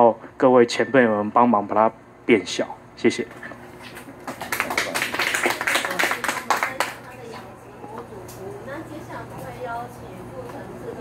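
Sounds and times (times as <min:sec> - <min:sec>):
audience applauding: 0:04.2 - 0:07.2.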